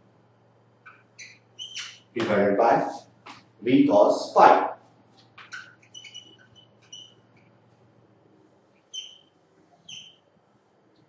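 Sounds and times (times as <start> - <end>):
faint room hum: 0.0 - 11.0
marker squeaking on whiteboard: 0.8 - 2.4, 5.1 - 7.8, 8.6 - 10.4.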